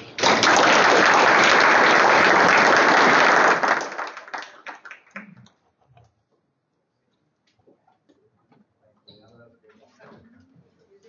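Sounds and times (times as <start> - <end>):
murmur of people talking: 7.7 - 11.0.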